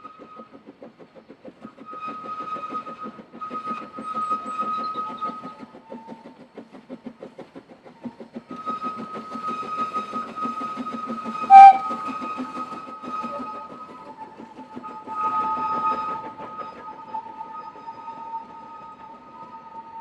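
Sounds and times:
steam locomotive exhaust beating: 0:00.0 - 0:20.0
thin high tone: 0:11.5 - 0:11.9.

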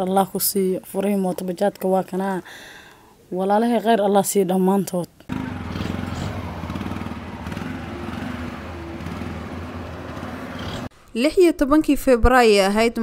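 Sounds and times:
small engine idling: 0:05.3 - 0:10.9.

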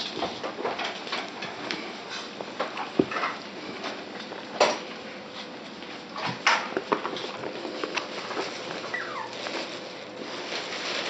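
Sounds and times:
puppy whimpering: 0:08.8 - 0:09.6.

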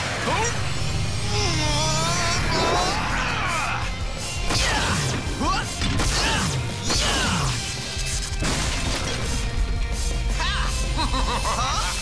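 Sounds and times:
cartoon action music: 0:00.0 - 0:12.0.

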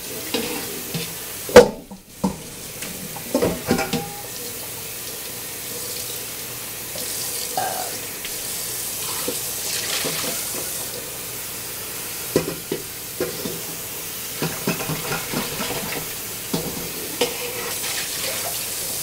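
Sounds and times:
metal pot clattering: 0:03.2 - 0:04.3, 0:14.4 - 0:17.8.

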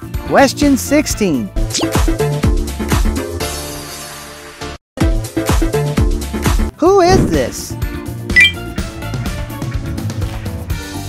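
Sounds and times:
bright click and chime: 0:08.4 - 0:08.6.

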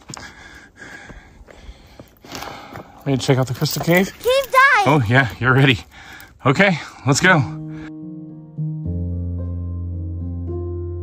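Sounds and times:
heavy breathing close up: 0:00.0 - 0:03.1, 0:05.8 - 0:07.0.

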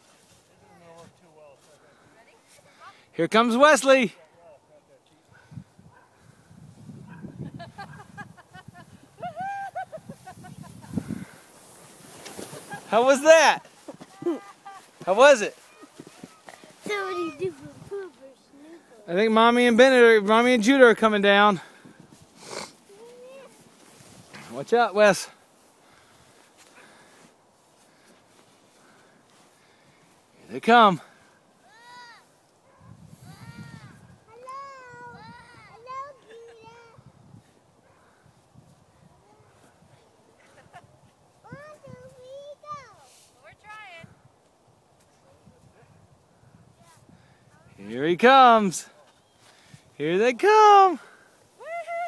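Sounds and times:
sled scraping on snow: 0:07.8 - 0:18.5, 0:21.9 - 0:30.2
child calling out: 0:14.1 - 0:14.7, 0:22.9 - 0:23.6, 0:31.7 - 0:32.2, 0:33.2 - 0:37.0.

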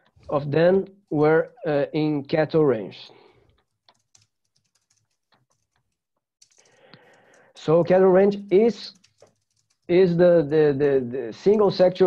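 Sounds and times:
soft keyboard typing: 0:03.3 - 0:12.0.

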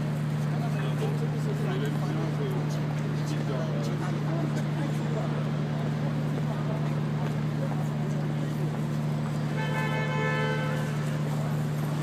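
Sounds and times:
city street hum: 0:00.0 - 0:12.0
horn toot: 0:09.6 - 0:11.2.

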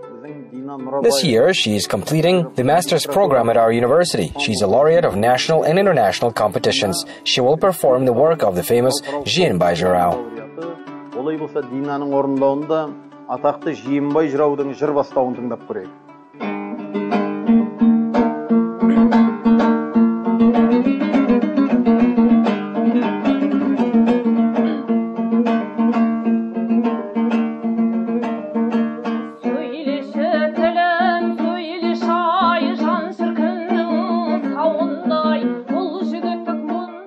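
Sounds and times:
dombra strummed fast: 0:16.4 - 0:35.4
woman singing with vibrato: 0:23.1 - 0:25.0, 0:29.4 - 0:37.0.

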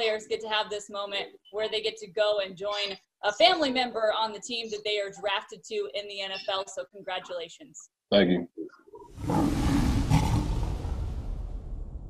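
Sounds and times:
lion roaring: 0:09.0 - 0:11.6.

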